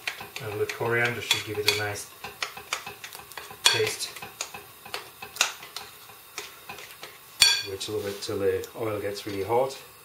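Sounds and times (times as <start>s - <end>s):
utensil stirring batter in bowl: 0.0s - 9.5s.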